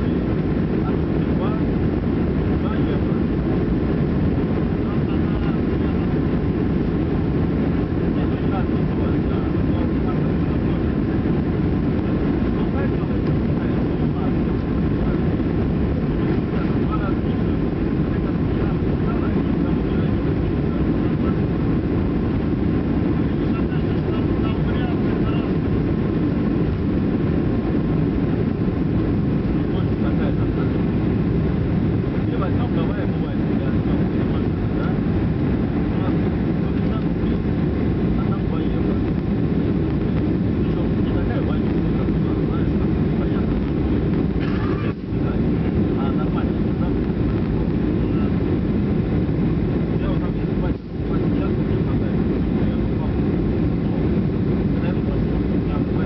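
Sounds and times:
jet engines roaring: 0.0s - 56.0s.

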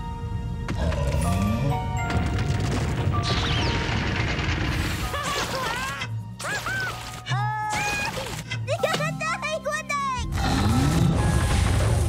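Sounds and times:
background music: 0.0s - 12.0s
volcano rumbling and crashing: 2.0s - 5.1s.

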